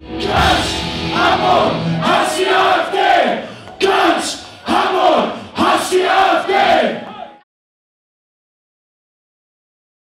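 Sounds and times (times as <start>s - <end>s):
crowd chanting in unison: 0.0s - 7.4s.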